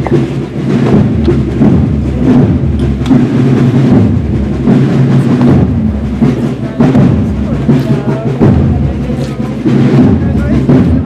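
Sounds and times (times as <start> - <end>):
military band drums marching: 0.0 - 11.0.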